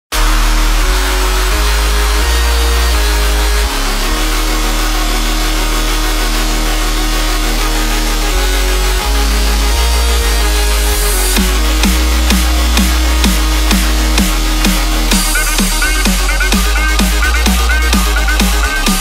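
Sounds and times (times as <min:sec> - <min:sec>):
deep sustained bass notes: 0:00.0 - 0:19.0
gritty noisy synth layer: 0:00.0 - 0:19.0.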